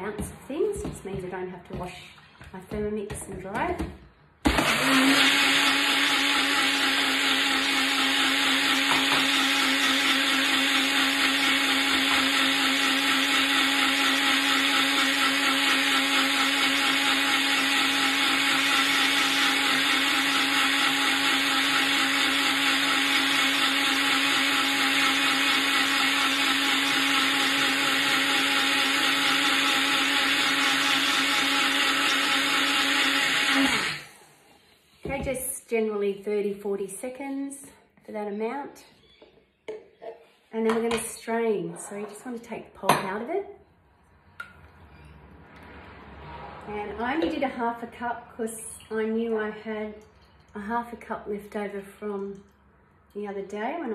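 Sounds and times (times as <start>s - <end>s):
blender motor running: 4.4s - 34.6s.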